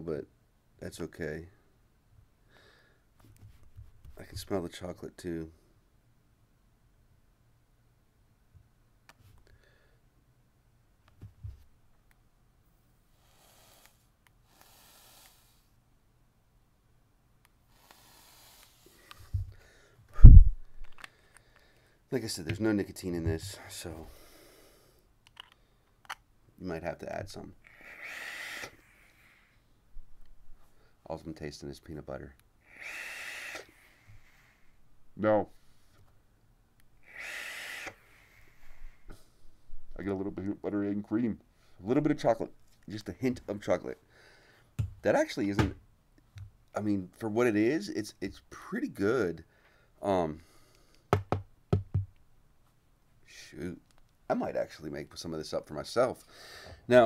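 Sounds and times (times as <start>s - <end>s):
airy hiss of vaping: 13.1s - 15.7s, 17.7s - 19.2s, 27.7s - 29.5s, 32.7s - 34.6s, 37.0s - 38.8s.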